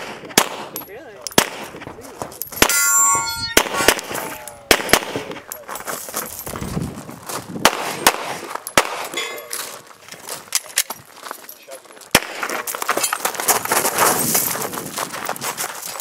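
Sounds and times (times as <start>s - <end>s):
metallic ringing: 2.6s - 5.6s
handgun shots: 3.5s - 5.5s, 7.6s - 9.2s.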